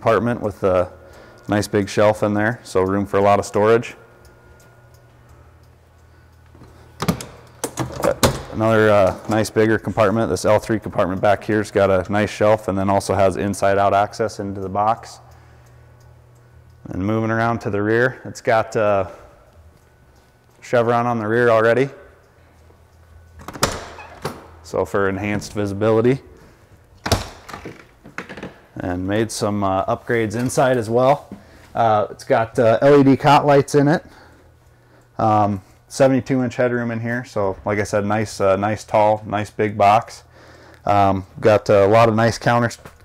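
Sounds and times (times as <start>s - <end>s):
steady low hum: 0.0s - 43.0s
door swung shut and latched: 7.0s - 8.6s, 23.4s - 24.5s, 27.0s - 28.6s
door swinging open: 23.4s - 24.6s.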